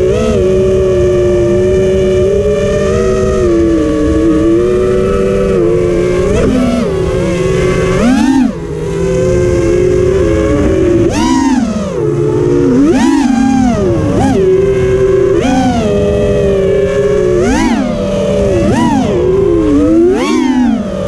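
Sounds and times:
drone motors whining: 0.0 - 21.0.

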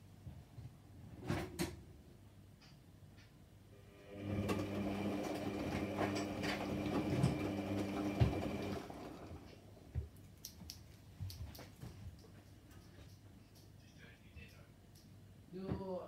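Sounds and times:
washing machine drum motor hum: 4.0 - 10.1
thump in washing machine: 8.1 - 8.6.

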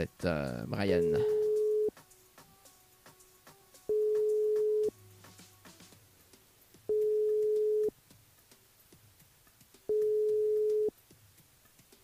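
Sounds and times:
telephone ringback tone: 1.0 - 1.9, 3.9 - 5.0, 6.9 - 7.9, 9.9 - 10.9.

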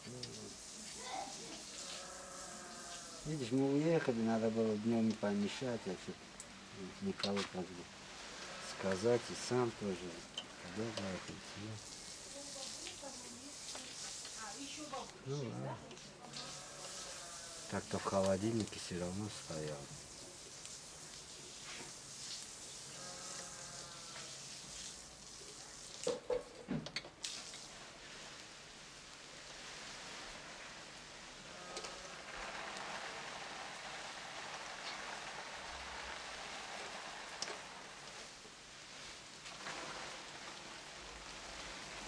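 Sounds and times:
meat sizzling over charcoal: 0.0 - 42.0.

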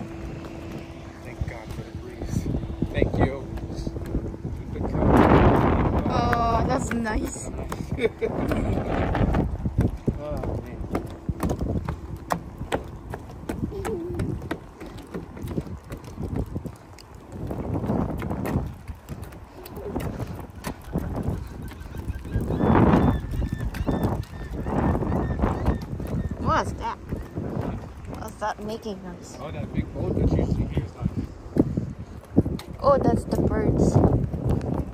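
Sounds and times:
footsteps on wooden boardwalk: 0.0 - 34.9
wind rumbling on microphone: 0.0 - 34.9
birds calling: 19.2 - 29.3.

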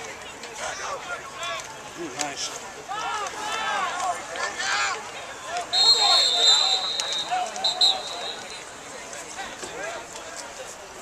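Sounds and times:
people shouting: 5.6 - 8.6.

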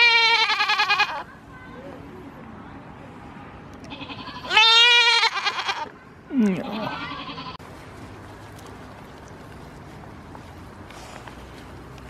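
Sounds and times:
goat bleating: 0.0 - 1.3, 3.8 - 7.6.

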